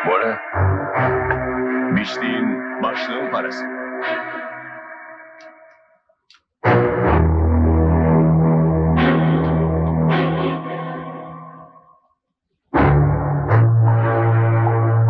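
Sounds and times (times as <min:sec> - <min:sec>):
dramatic film score stings: 0:00.0 - 0:05.8, 0:06.6 - 0:11.8.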